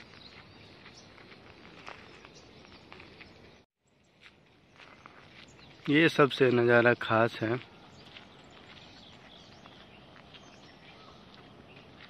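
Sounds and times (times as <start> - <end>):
footsteps on trail: 0.0 - 12.0.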